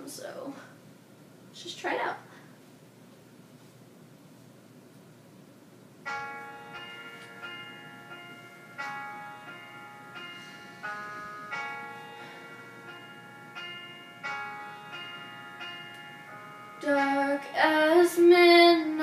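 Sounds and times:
struck pitched notes ringing: 0:06.0 - 0:19.0.

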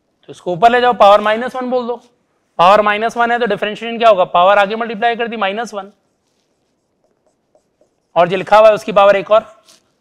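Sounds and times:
pen writing on a board: 0:05.9 - 0:08.9.

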